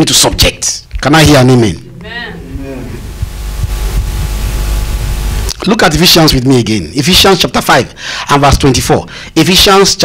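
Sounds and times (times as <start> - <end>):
steady hum: 0.0 - 9.4
low rumble: 2.4 - 5.5.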